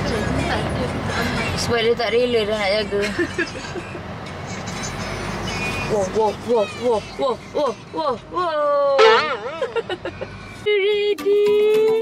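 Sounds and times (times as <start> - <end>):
car engine hum inside cabin: 0.0 - 10.7.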